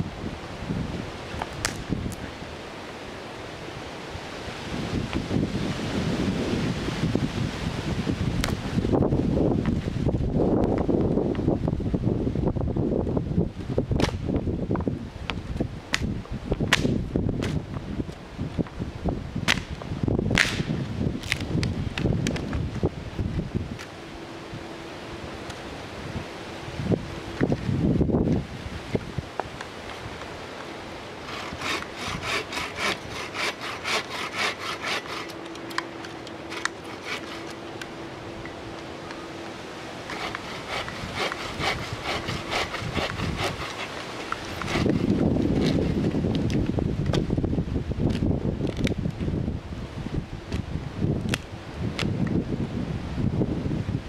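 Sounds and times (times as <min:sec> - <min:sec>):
branches rustling: 0:00.0 - 0:53.3
bow saw cutting branch: 0:01.4 - 0:02.2, 0:15.9 - 0:17.6, 0:19.4 - 0:22.5, 0:31.2 - 0:37.9, 0:40.0 - 0:47.2
wood snapping: 0:01.4 - 0:02.2, 0:14.0 - 0:14.2, 0:15.3 - 0:17.6, 0:19.4 - 0:22.7, 0:51.2 - 0:52.1.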